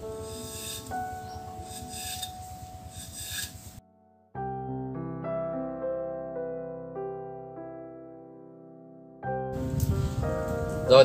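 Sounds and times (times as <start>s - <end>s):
knife shaving bamboo: 0.0s - 3.8s.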